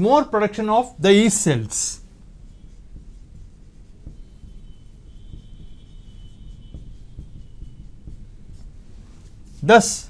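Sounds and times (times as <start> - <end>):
low room hum: 0.0 - 10.0
marker scratching on whiteboard: 1.0 - 10.0.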